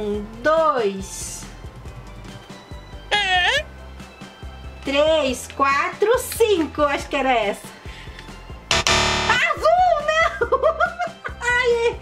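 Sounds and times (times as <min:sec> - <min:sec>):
loud guitar chord: 0:08.7 - 0:09.5.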